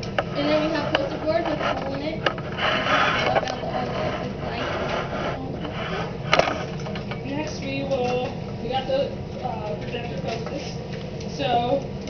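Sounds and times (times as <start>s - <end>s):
low background hum: 0.0s - 12.0s
people talking indistinctly: 0.2s - 11.9s.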